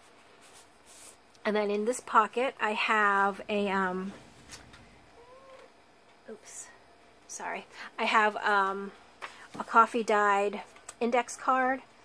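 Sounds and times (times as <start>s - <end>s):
faint animal call: 5.1s - 5.7s.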